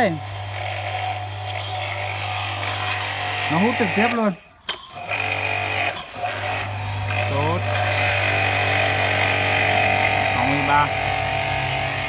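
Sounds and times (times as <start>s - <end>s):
pressure washer humming: 0.0s - 12.0s.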